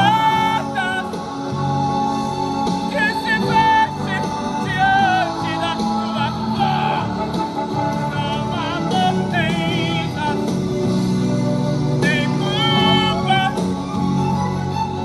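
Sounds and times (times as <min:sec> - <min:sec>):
man singing with vibrato: 0:00.0 - 0:10.8, 0:12.0 - 0:13.8
recorded backing track: 0:00.0 - 0:15.0.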